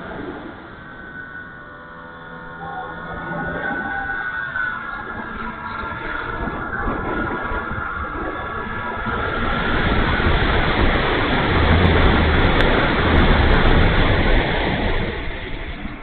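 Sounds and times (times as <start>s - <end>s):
faint electric motor whine: 0.0s - 16.0s
low buffeting rumble: 0.0s - 16.0s
wind rushing over microphone: 0.0s - 16.0s.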